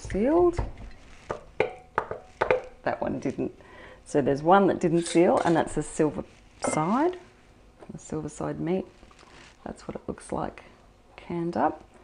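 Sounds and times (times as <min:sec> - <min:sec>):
taps on metal jar lids: 0:01.3 - 0:02.8.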